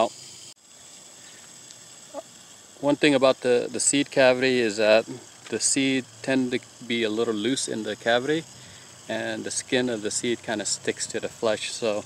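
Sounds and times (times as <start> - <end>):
outdoor background hiss: 0.0 - 12.0
man talking: 2.8 - 8.5, 9.1 - 12.0.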